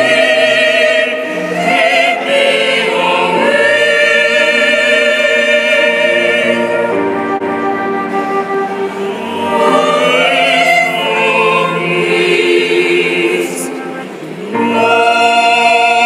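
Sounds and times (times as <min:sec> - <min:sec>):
mixed choir singing chords: 0:00.0 - 0:16.0.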